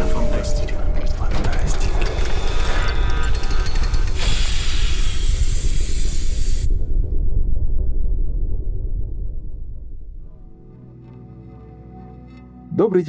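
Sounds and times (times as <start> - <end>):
low rumble: 0.0 - 11.2
loud hiss: 4.2 - 6.8.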